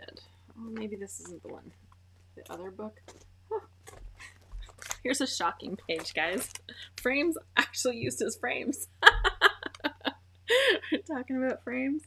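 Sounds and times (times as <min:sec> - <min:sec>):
plastic page protectors crinkling: 0:02.4 - 0:06.8.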